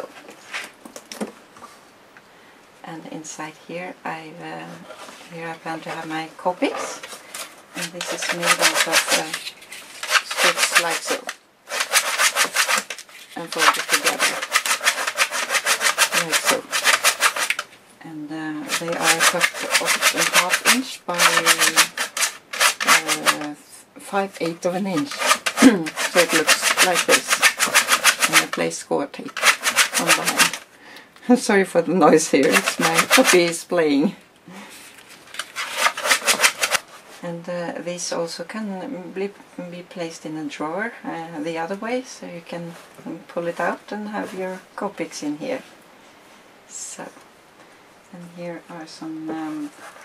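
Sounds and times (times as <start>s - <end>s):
rapid scratchy rubbing: 4.9s - 17.8s, 18.6s - 23.6s, 24.4s - 30.6s, 32.3s - 33.6s, 35.3s - 37.0s.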